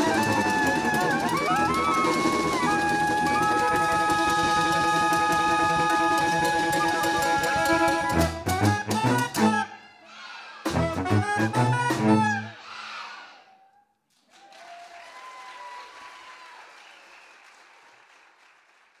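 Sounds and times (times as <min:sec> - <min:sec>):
live band with saxophones: 0:00.0 - 0:10.0, 0:10.6 - 0:12.9.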